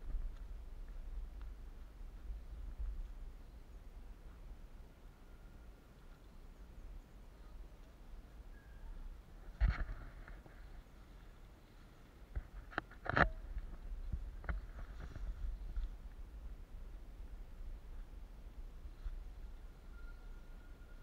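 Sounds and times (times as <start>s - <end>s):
wind rumble on microphone: 0.0s - 4.9s, 12.3s - 21.0s.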